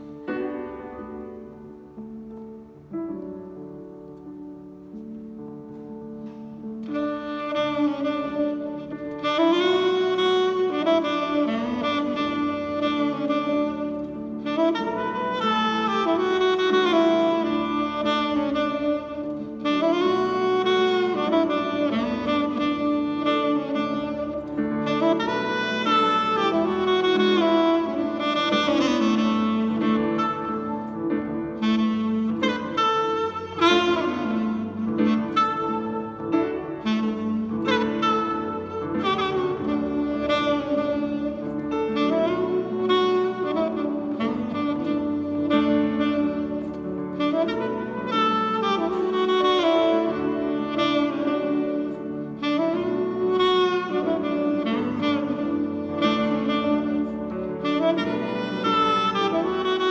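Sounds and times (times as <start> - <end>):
grand piano accompaniment: 0.0 - 59.9
tenor saxophone melody: 0.0 - 59.9.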